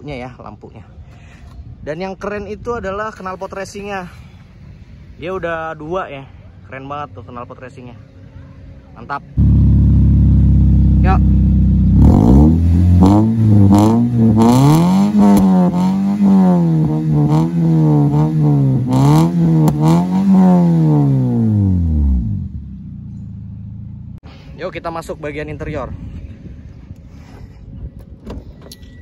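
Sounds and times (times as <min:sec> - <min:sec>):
car engine idling: 0:09.4 - 0:24.2
car engine revving: 0:09.4 - 0:24.2.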